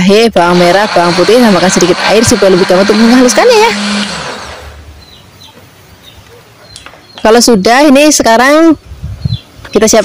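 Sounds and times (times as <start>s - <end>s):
blender motor spinning down: 0.4s - 4.8s.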